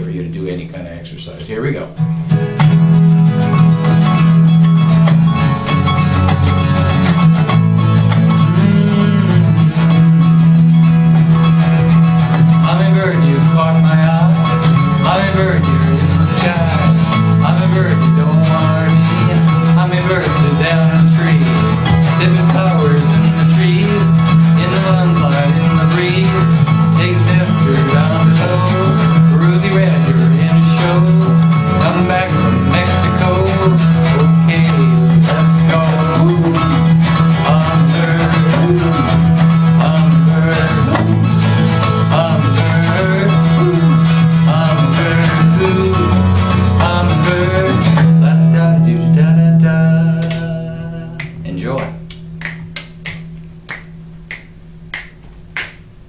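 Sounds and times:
acoustic guitar strumming: 0:00.0 - 0:56.0
finger snaps: 0:05.0 - 0:05.3, 0:50.2 - 0:50.5, 0:51.2 - 0:56.0
man singing: 0:08.3 - 0:10.3, 0:12.4 - 0:52.0.

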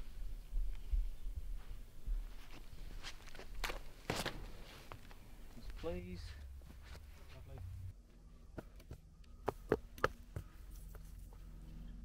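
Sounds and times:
footsteps: 0:00.0 - 0:07.9
low rumble: 0:05.3 - 0:09.4.

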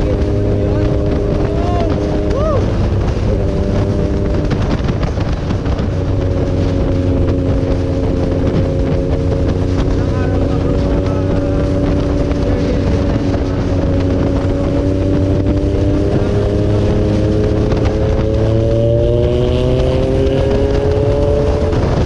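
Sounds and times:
motorcycle engine and exhaust: 0:00.0 - 0:22.0
wind buffeting on microphone: 0:00.0 - 0:22.0.

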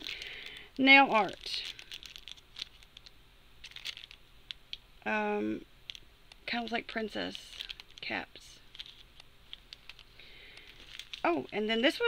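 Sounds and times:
plastic zip bag crinkling: 0:00.0 - 0:04.6, 0:05.9 - 0:12.0.

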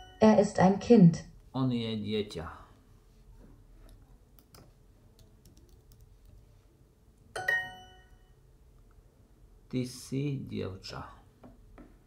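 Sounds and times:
faint keyboard typing: 0:03.8 - 0:06.6
bright electronic chime: 0:07.4 - 0:08.3.

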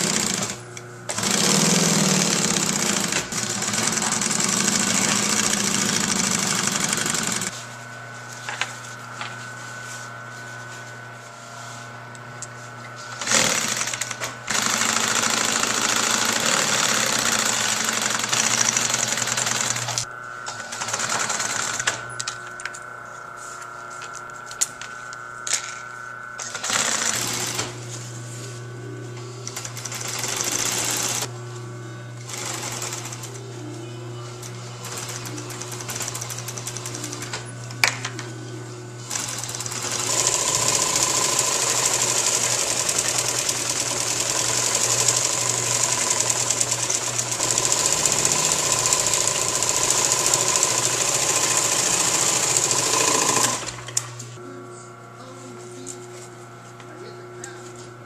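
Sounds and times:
fast mechanical rattle: 0:00.0 - 0:07.5, 0:13.2 - 0:20.0, 0:39.1 - 0:53.8.

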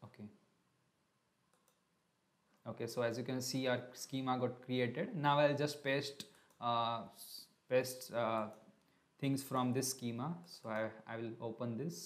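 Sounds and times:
faint computer mouse click: 0:01.5 - 0:01.8.

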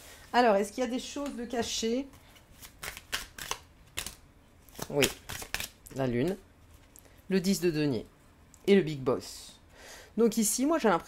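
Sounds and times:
cards snapping on table: 0:02.6 - 0:06.4.

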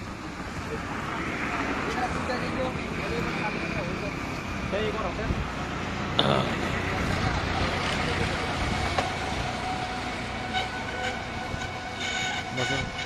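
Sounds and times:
steady rumbling noise: 0:00.0 - 0:13.0
high whining tone: 0:07.5 - 0:13.0.

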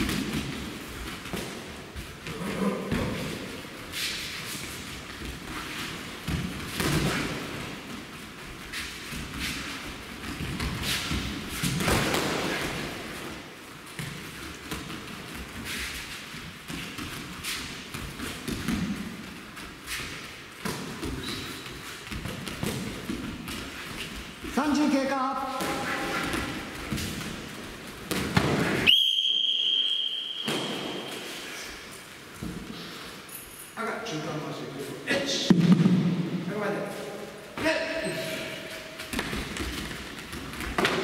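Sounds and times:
high whistle-like signal tone: 0:28.9 - 0:31.2
man shouting: 0:37.6 - 0:38.7.

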